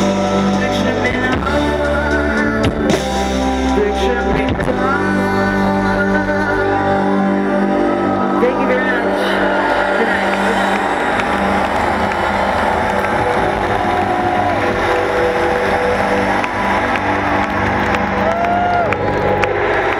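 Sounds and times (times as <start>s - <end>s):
people shouting and talking: 7.4s - 19.9s
audience cheering and applauding: 7.5s - 19.9s.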